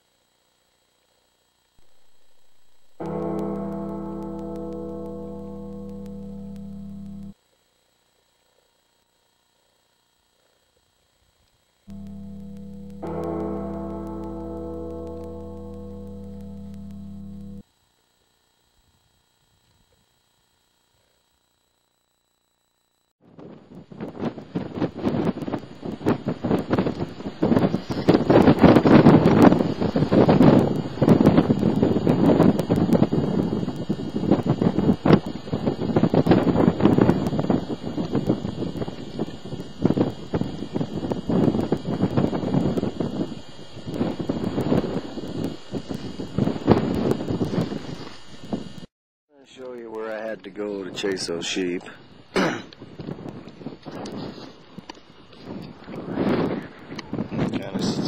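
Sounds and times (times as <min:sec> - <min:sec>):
wind noise on microphone: 0:23.2 - 0:48.9, 0:50.8 - 0:58.0.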